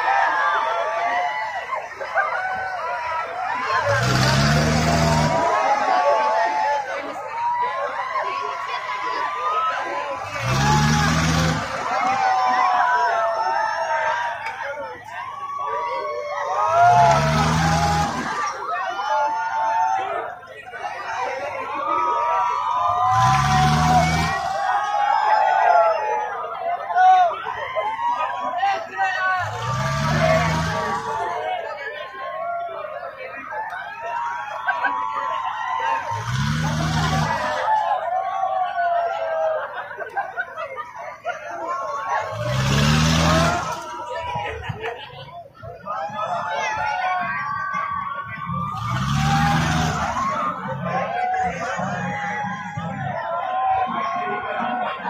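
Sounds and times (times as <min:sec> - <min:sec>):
riders shouting and screaming: 0:00.0 - 0:55.0.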